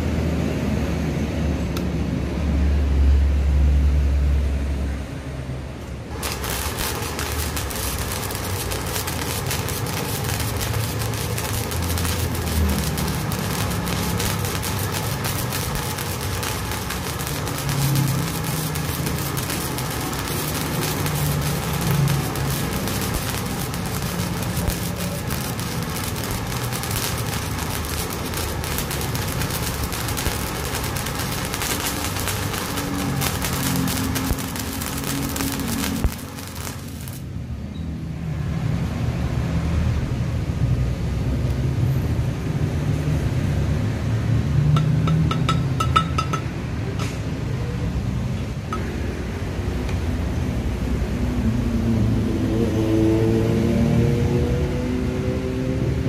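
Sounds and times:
arc welding crackle: 6.1 - 37.6.

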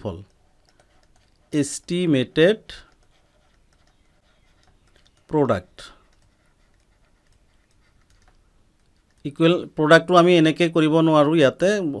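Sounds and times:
stylus tapping on pen tablet: 2.9 - 5.3.

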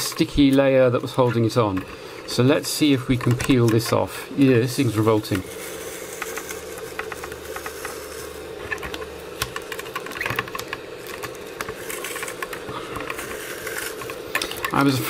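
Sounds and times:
adhesive film crackling as peeled: 4.8 - 15.0.

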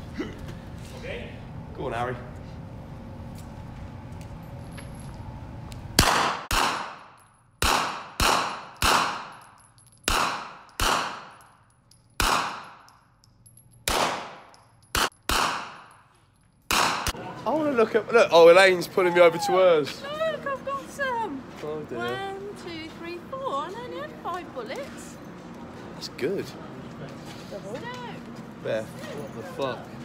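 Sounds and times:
rifle shots echoing indoors: 6.0 - 9.4, 10.1 - 11.4, 12.2 - 12.9, 13.8 - 15.9, 16.7 - 17.1.

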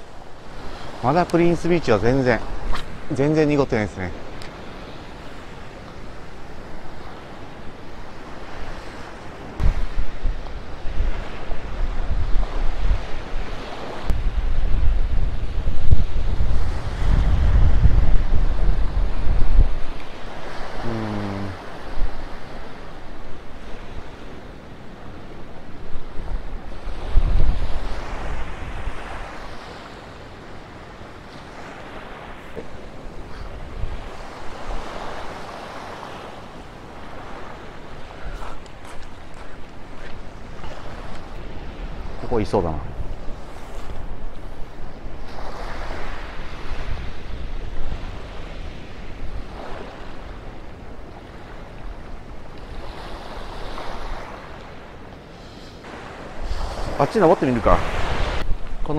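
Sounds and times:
surf washing up a beach: 0.0 - 58.9
wind buffeting microphone: 4.2 - 20.8, 21.7 - 29.7, 30.4 - 54.4.

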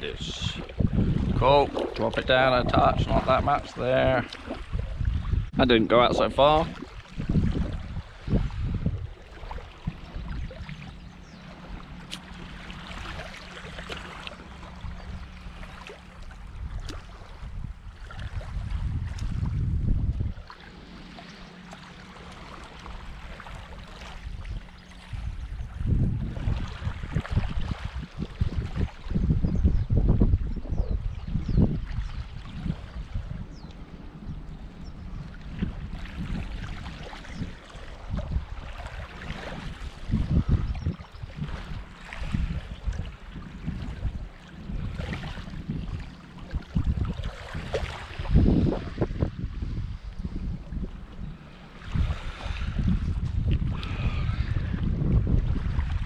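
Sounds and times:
wind buffeting microphone: 0.0 - 21.4, 22.1 - 56.0
small waves lapping on shingle: 6.4 - 19.6, 20.4 - 25.3, 26.4 - 29.0, 35.3 - 49.3.

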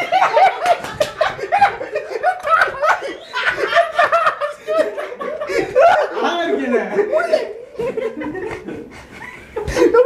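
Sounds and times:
man laughing in bursts: 0.0 - 6.2.

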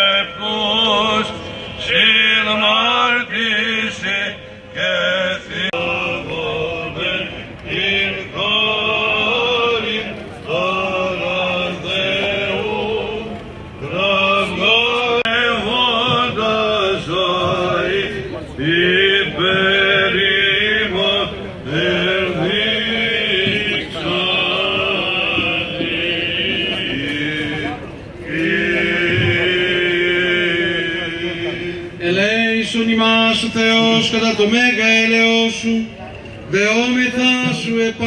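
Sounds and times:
men singing chant: 0.0 - 35.8
low held vocal drone: 0.0 - 38.0.

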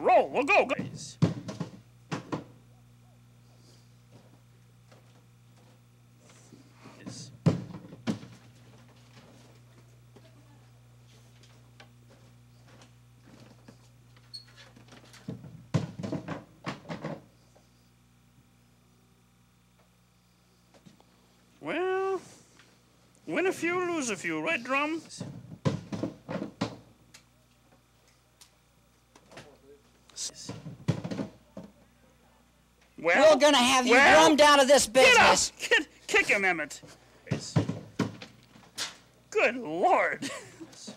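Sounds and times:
faint muffled voices: 31.3 - 32.9
drum prop thunks on pavement: 37.3 - 38.3.

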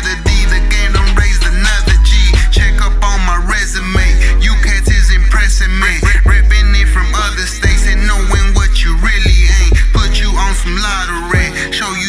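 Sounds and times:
rapping over a heavy bass beat: 0.0 - 12.0.

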